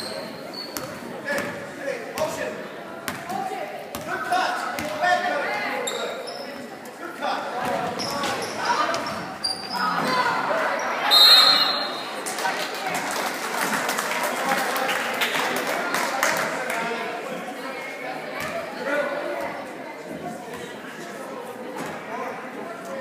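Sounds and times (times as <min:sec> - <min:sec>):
sneakers squeaking: 0:00.0 - 0:01.6, 0:05.8 - 0:06.7, 0:07.6 - 0:12.0
spectators talking and calling out: 0:00.0 - 0:23.0
referee's whistle: 0:11.0 - 0:12.0.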